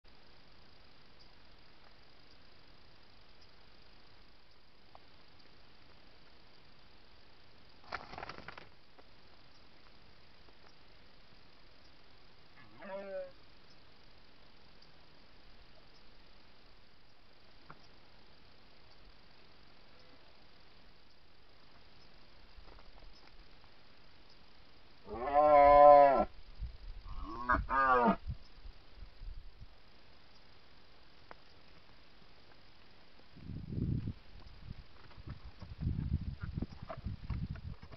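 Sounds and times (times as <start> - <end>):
faint microphone hiss: 0.1 - 37.9
rustling and clicks: 7.8 - 9.1
deer stag roaring: 12.6 - 13.4, 25.1 - 26.3.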